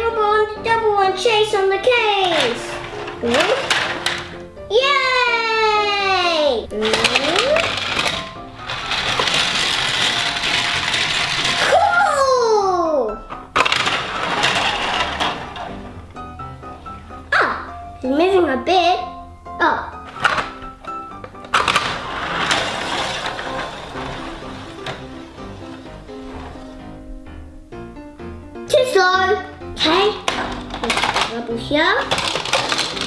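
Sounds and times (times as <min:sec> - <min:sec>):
background music with melody: 0:00.0 - 0:33.0
plastic wheels rattling on track: 0:01.2 - 0:04.4, 0:06.7 - 0:12.4, 0:13.4 - 0:16.0, 0:20.0 - 0:27.0, 0:29.8 - 0:33.0.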